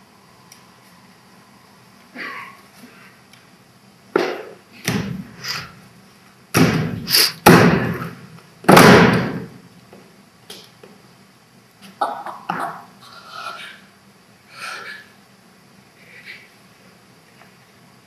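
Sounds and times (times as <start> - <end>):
bodies thudding on wooden stage: 6.5 - 9.6.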